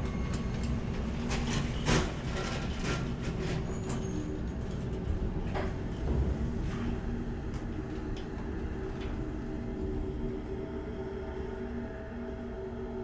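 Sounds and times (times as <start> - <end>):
cage elevator rumbling: 0.0 - 11.5
steady low hum: 0.0 - 13.0.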